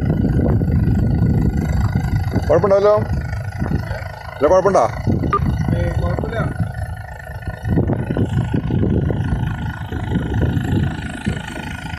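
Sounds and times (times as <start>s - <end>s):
boat running noise: 0.0s - 11.9s
wind buffeting microphone: 0.0s - 11.9s.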